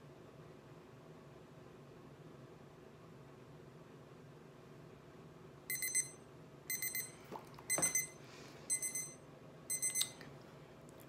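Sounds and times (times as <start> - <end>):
quick high electronic timer beeps: 5.7 - 7.2, 7.8 - 10.2.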